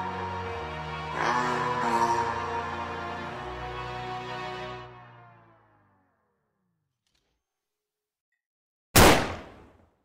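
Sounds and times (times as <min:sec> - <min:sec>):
revolver gunshot: 0:09.0 - 0:09.8.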